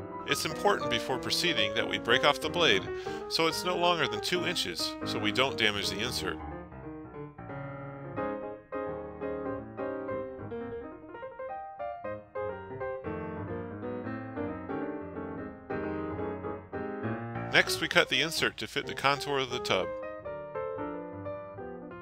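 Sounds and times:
piano music: 0.0 - 22.0.

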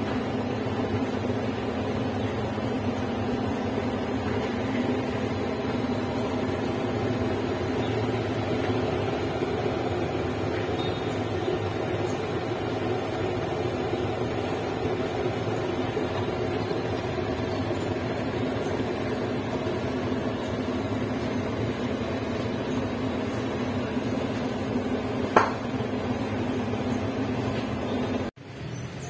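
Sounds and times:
steady low mechanical hum: 0.0 - 28.4.

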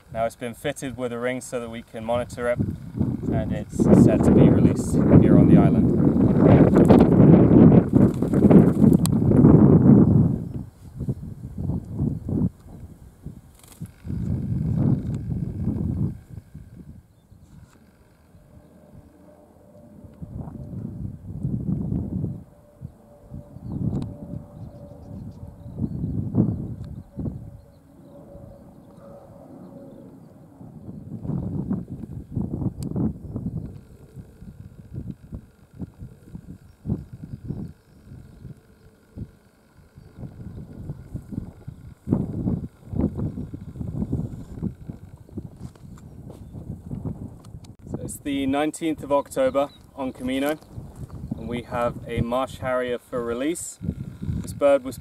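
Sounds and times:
wind gusting over microphone: 0.0 - 55.0.

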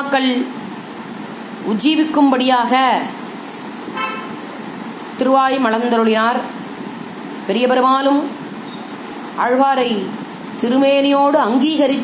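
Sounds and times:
steady background hiss: 0.0 - 12.0
vehicle horn toot: 4.0 - 4.4.

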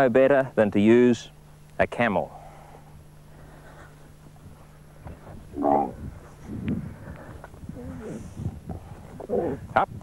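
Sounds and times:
camel calling: 5.2 - 6.3, 7.7 - 9.7.

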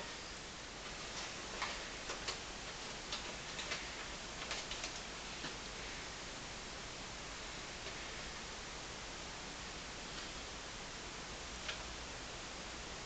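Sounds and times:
background hiss: 0.0 - 13.0.

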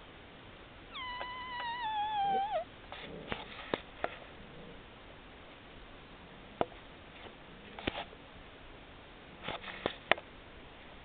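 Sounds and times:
puppy whining: 0.9 - 3.1.

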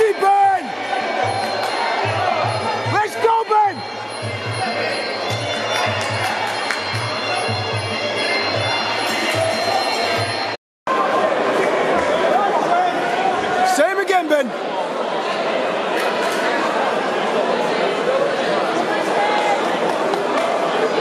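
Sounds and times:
crowd noise in a hall: 0.0 - 21.0.

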